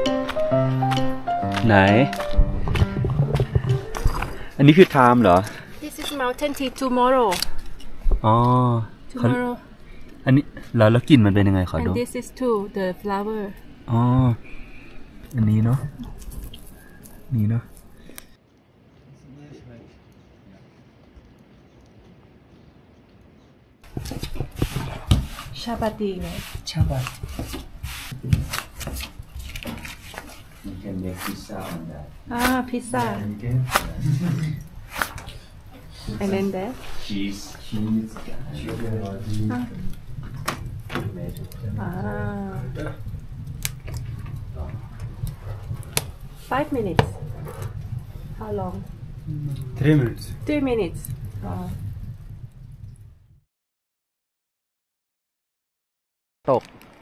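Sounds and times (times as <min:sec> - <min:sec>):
background music with held notes: 0:00.0 - 0:04.5
person speaking: 0:00.6 - 0:06.8
faint low knocks: 0:02.2 - 0:04.5
rubbing and scraping: 0:23.9 - 0:52.9.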